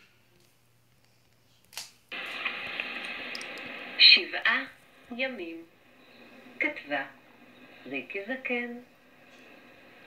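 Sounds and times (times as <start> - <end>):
steady hiss from small speaker: 0.0 - 10.0.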